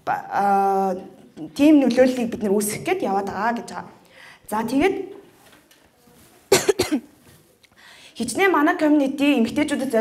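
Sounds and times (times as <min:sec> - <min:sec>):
woman coughing into microphone: 0:06.5 - 0:07.2.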